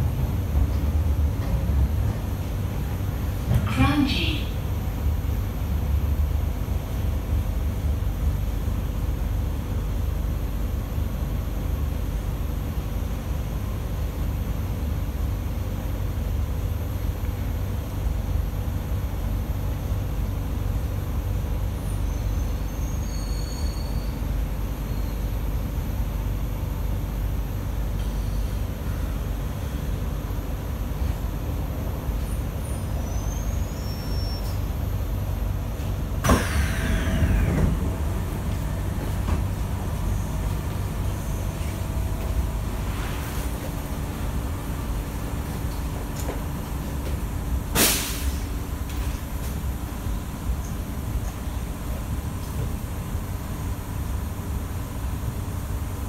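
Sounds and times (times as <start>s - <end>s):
train carriage rumble: 0.0s - 56.0s
train doors opening burst: 35.8s - 43.6s, 47.1s - 49.6s.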